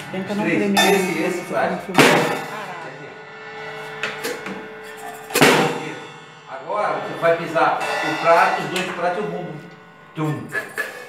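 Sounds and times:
cymbal crash: 0:00.0 - 0:11.0
drum hit: 0:00.0 - 0:11.0.

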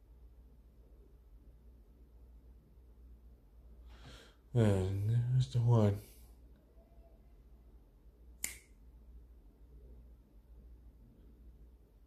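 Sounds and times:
low steady hum: 0:00.0 - 0:12.0
finger snap: 0:08.4 - 0:08.8.

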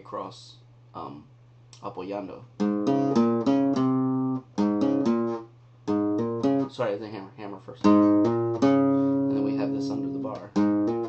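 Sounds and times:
flamenco guitar single notes: 0:02.6 - 0:06.7, 0:07.8 - 0:11.0.

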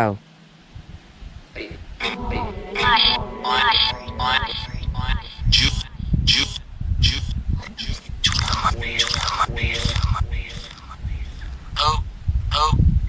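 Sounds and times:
low rumble: 0:00.7 - 0:13.0
radio static: 0:02.0 - 0:06.0, 0:07.6 - 0:11.9
chopped voice fragments: 0:02.0 - 0:12.0.

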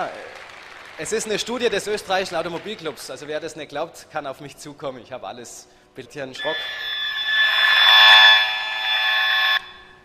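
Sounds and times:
radiation meter buzzing: 0:06.4 - 0:09.9.

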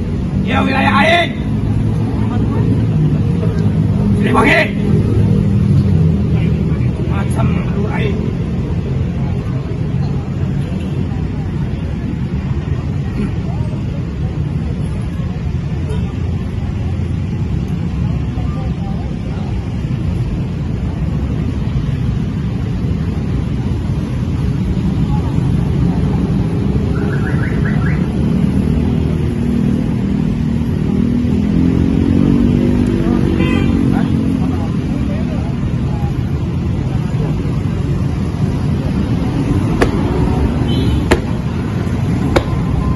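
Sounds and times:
road traffic rumble: 0:00.0 - 0:42.9.

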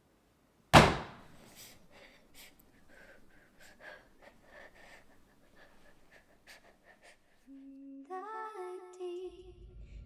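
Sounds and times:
person humming a slow tune: 0:07.5 - 0:09.8.

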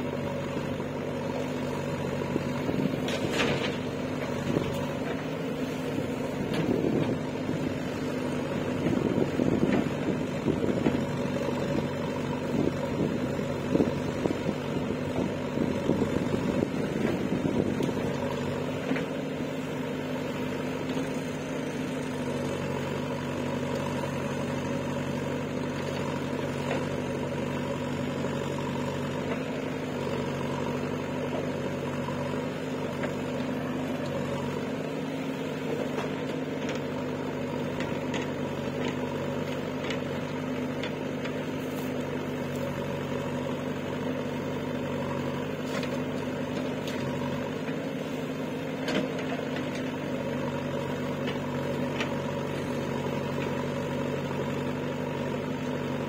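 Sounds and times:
diesel engine running: 0:00.0 - 0:56.0.

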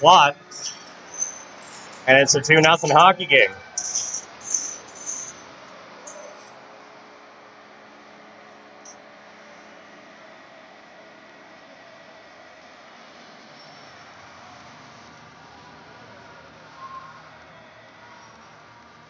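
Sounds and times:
arena background hiss: 0:01.7 - 0:05.3
short high hissing bursts: 0:03.8 - 0:05.4.

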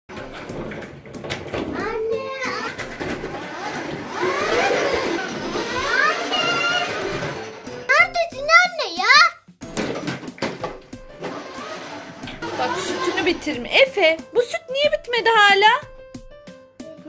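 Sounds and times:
music: 0:00.1 - 0:17.0.

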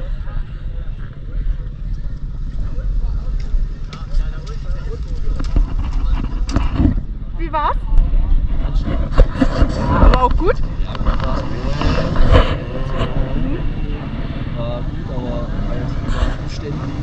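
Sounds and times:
indistinct voices: 0:00.0 - 0:17.0
motorcycle engines running: 0:00.0 - 0:17.0.

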